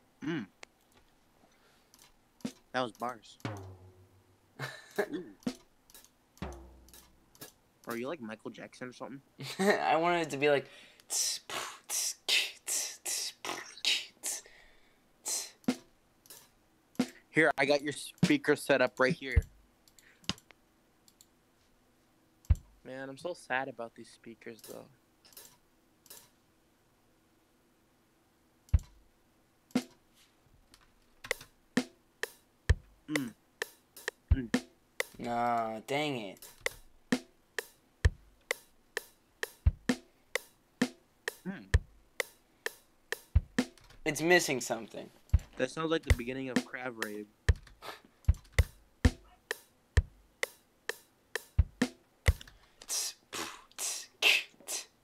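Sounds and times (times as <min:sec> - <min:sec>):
snare drum hits: 0:03.4 - 0:04.2, 0:06.4 - 0:07.0, 0:40.8 - 0:43.8, 0:45.4 - 0:46.8, 0:48.3 - 0:52.4
hi-hat hits: 0:03.4 - 0:04.3, 0:06.4 - 0:07.2, 0:15.3 - 0:17.2, 0:31.3 - 0:35.4, 0:36.4 - 0:44.6, 0:45.4 - 0:47.7, 0:48.3 - 0:53.2, 0:53.8 - 0:55.0
tom hits dropping in pitch: 0:03.4 - 0:04.3
kick drum hits: 0:03.5 - 0:04.2, 0:32.7 - 0:33.0, 0:34.3 - 0:34.6, 0:38.1 - 0:38.3, 0:39.6 - 0:40.0, 0:43.3 - 0:43.7, 0:45.4 - 0:46.2, 0:48.3 - 0:49.3, 0:50.0 - 0:50.2, 0:51.6 - 0:52.4
hissing drum hits: 0:03.5 - 0:04.3, 0:06.4 - 0:07.1, 0:39.5 - 0:40.0, 0:41.3 - 0:43.8.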